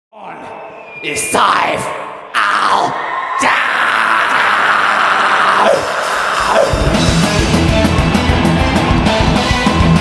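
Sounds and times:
crowd cheering and screaming: 2.4s - 10.0s.

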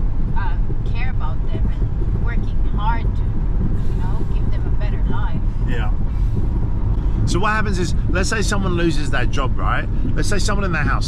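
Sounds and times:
car road and engine rumble: 0.0s - 11.0s
faint voices: 3.8s - 6.0s, 7.2s - 11.0s.

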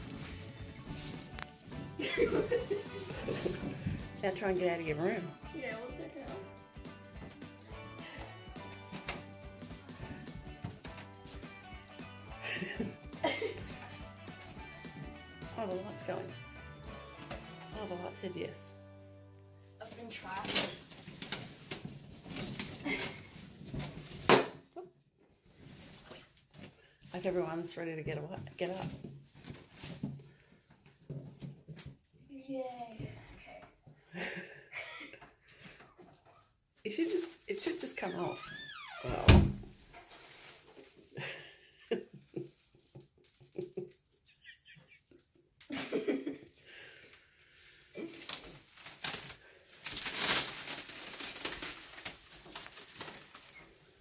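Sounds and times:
plastic wrap rustling and crinkling: 0.0s - 6.4s, 19.8s - 24.4s, 25.4s - 27.8s, 36.9s - 39.0s, 39.6s - 44.0s, 48.0s - 54.0s
plastic wrap sharp crack: 20.4s - 24.6s, 48.0s - 53.9s.

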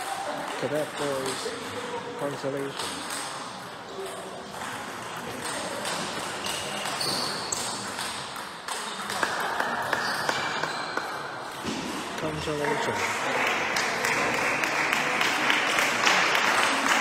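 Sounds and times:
sports hall noise: 0.0s - 17.0s.

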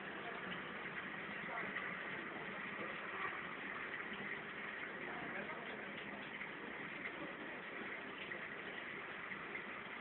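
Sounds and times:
aquarium water circulation hiss: 0.0s - 10.0s.

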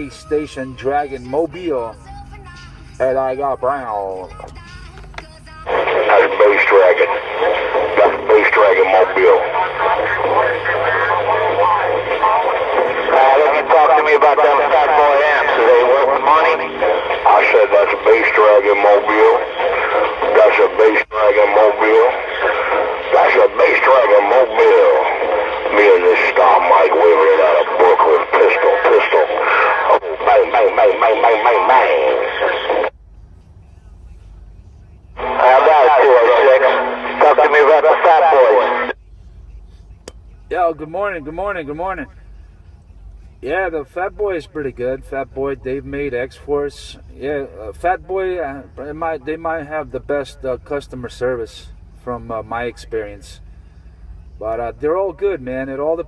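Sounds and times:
person talking over radio speaker: 0.0s - 32.9s, 33.7s - 56.0s.

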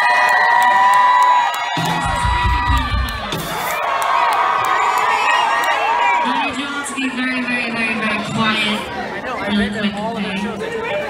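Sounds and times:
audience cheering and screaming: 0.0s - 9.2s.

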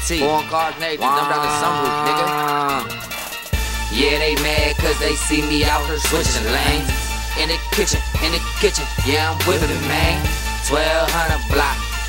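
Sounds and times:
hip-hop beat with heavy bass: 0.0s - 12.0s
held vocal note: 0.2s - 3.0s, 9.4s - 10.4s.

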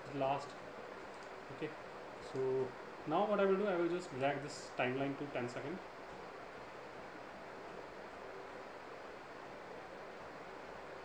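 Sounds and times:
low hiss of microphone noise: 0.0s - 11.0s.

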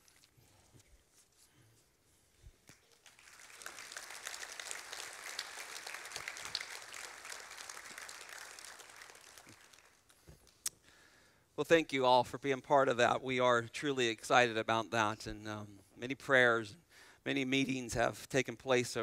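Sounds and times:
congregation applauding: 2.7s - 10.3s.

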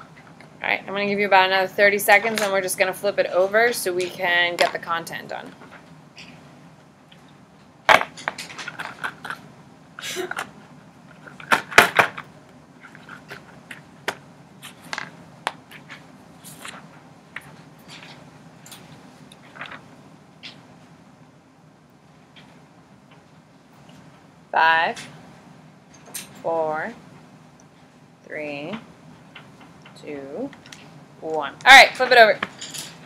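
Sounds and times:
paper rustling: 19.4s - 19.9s.

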